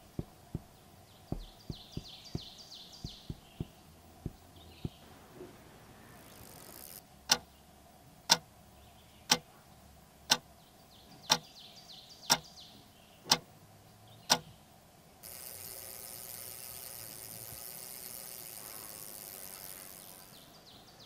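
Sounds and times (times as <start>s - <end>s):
outdoor background hiss: 0.0s - 21.0s
wall clock ticking: 1.3s - 5.0s.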